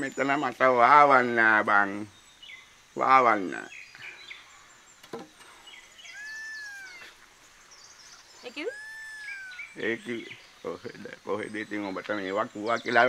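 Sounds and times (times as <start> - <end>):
bird whistled call: 6.0 - 7.2, 8.5 - 10.4
person exclaiming: 6.2 - 7.1.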